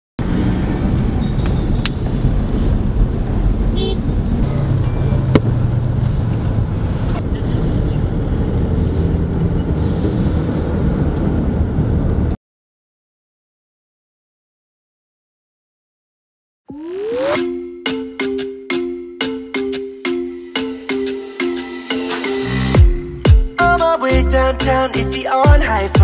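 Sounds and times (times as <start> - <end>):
traffic rumble: 0.2 - 12.4.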